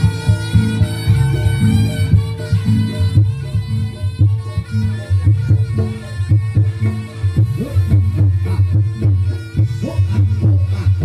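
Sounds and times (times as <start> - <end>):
driving drum rhythm: 0.0 - 11.0
sustained pitched instrument line: 0.0 - 11.0.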